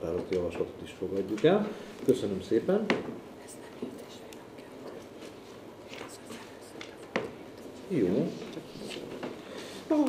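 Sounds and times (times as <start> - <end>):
faint whispering: 3.3 - 5.2, 5.9 - 7.2.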